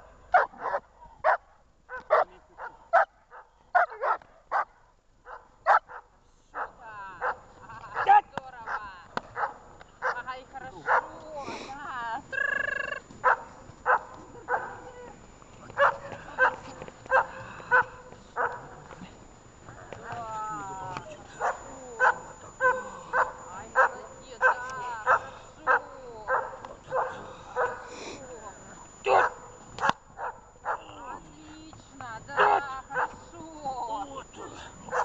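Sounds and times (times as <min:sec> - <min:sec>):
dog barking: 0:00.3 - 0:11.2, 0:13.2 - 0:14.9, 0:15.8 - 0:18.8, 0:21.4 - 0:27.9, 0:28.8 - 0:31.0, 0:32.3 - 0:33.3, 0:34.4 - 0:35.0.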